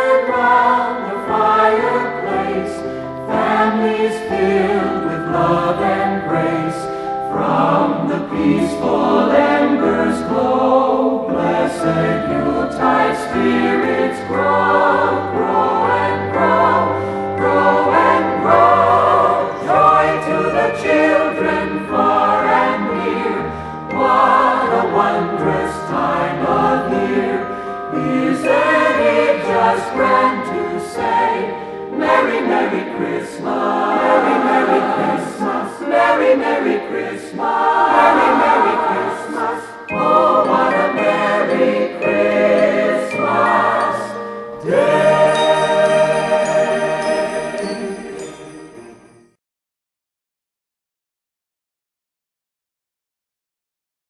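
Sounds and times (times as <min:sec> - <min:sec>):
choir singing: 0:00.0 - 0:49.2.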